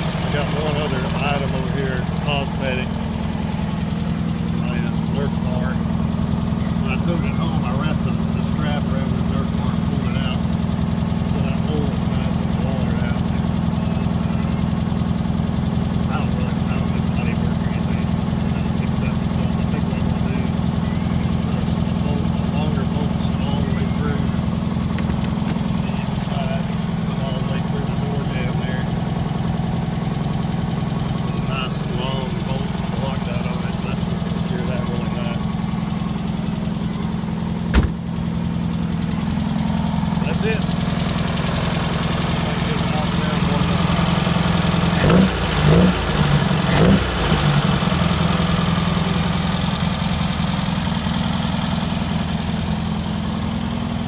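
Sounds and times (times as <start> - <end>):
car engine idling: 0.0 - 54.0
sharp knock: 37.7 - 38.0.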